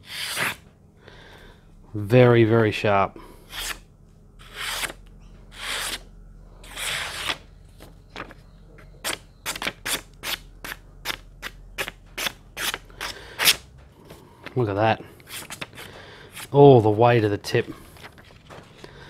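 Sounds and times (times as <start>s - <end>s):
knife slicing paper: 0.0s - 0.6s, 6.6s - 7.4s.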